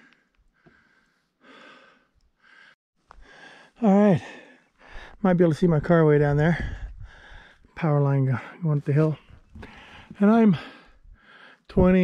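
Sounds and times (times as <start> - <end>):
man breathing hard: 0.0 - 5.2, 6.5 - 7.7, 9.6 - 11.7.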